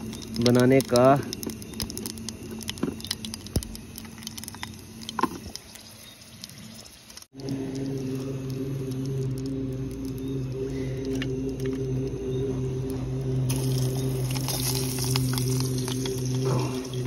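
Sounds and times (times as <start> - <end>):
low hum with held pitches: 0.0 - 17.0
seeds crackling in hot oil: 0.0 - 17.0.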